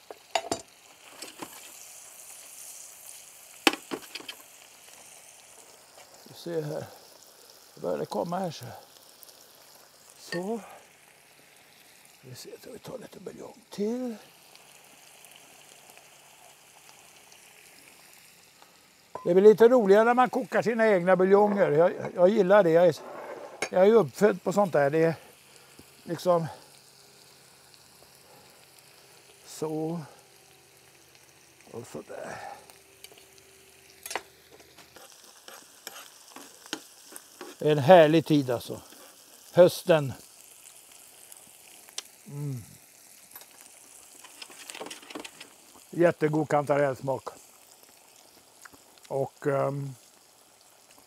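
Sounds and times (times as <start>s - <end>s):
broth being poured: 0.0s - 51.0s
rice sizzling in a pan: 0.0s - 51.0s.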